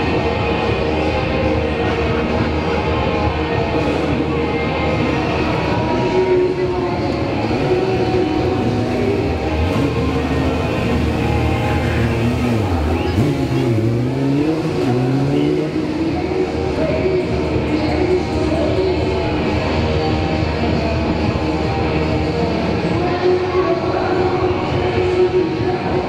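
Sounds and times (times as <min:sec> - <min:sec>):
motorcycle engine revving: 0:07.0 - 0:18.0.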